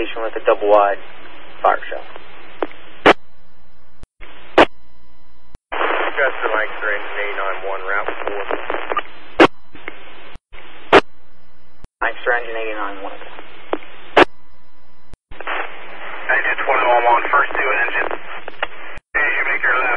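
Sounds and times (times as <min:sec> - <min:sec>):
radio hiss: 0:00.0 - 0:03.2, 0:05.7 - 0:11.1, 0:12.0 - 0:14.3, 0:15.4 - 0:19.9
radio clicks: 0:02.1 - 0:03.2, 0:13.3 - 0:14.4, 0:17.5 - 0:18.8
voice over radio: 0:05.8 - 0:08.9, 0:15.5 - 0:19.9.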